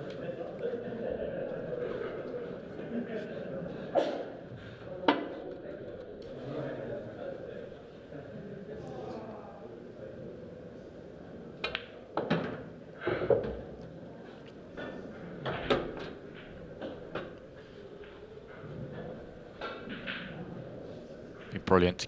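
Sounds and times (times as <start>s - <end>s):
low hall background: 0.0s - 22.0s.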